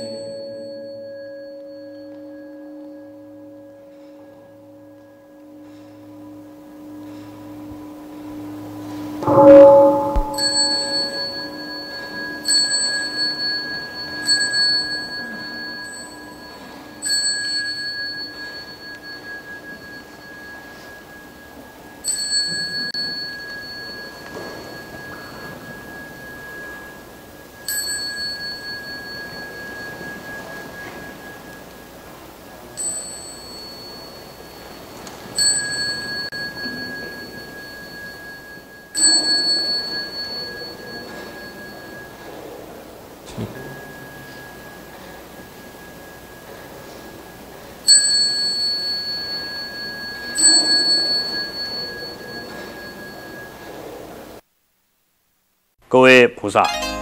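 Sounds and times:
small bell ringing: 0.0 - 3.4, 9.2 - 31.7, 32.7 - 42.6, 47.9 - 53.9.

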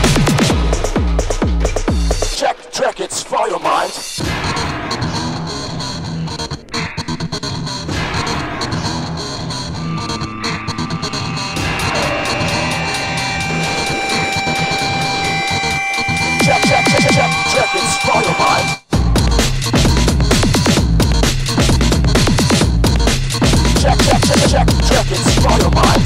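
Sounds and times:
psychedelic trance music: 3.4 - 26.0
pulsing bass line: 4.2 - 26.0
sustained synth tones: 4.6 - 18.8.

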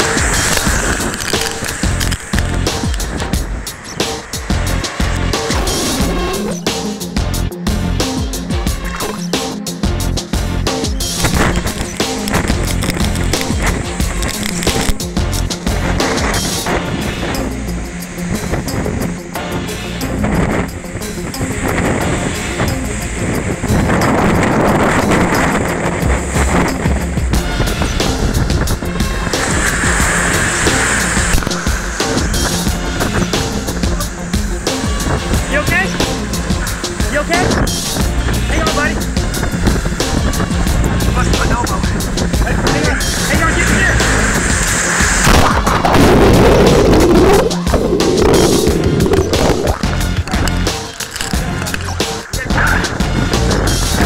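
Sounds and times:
surf crashing: 0.0 - 7.2, 11.1 - 54.0
background music: 0.0 - 54.0
heavy wind noise: 0.0 - 54.0.

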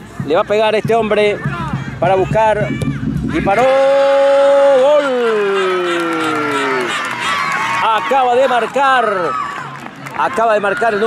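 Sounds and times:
commentator shouting: 0.2 - 6.9.

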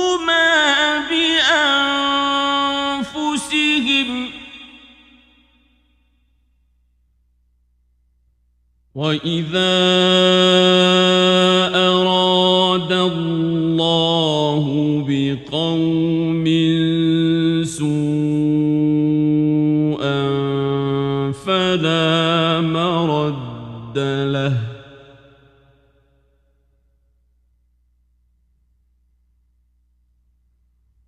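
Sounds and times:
man chanting recitation: 0.0 - 4.8, 9.0 - 25.2.

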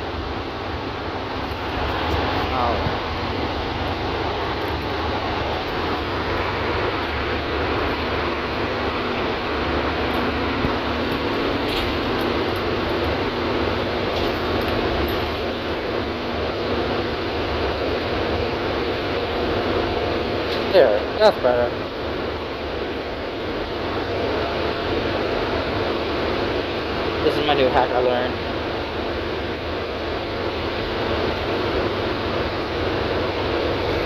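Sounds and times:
bus engine and road noise: 0.0 - 34.0.

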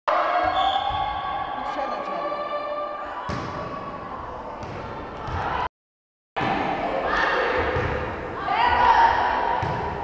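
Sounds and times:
voices ringing in large hall: 0.1 - 5.7, 6.4 - 10.0.

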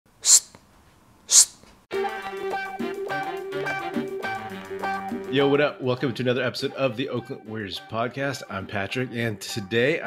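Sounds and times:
short sharp hissing bursts: 0.2 - 0.6, 1.3 - 1.6
guitar music: 1.9 - 9.8.

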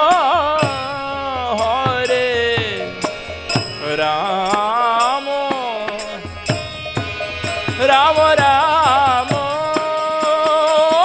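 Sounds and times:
man singing a chant: 0.0 - 6.6, 7.8 - 11.0
harmonium: 0.0 - 11.0
light percussion strikes: 0.0 - 11.0.

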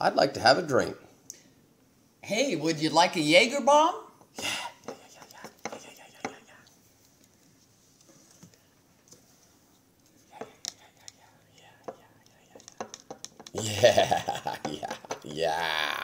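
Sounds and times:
person saying yeah softly: 15.2 - 16.0.

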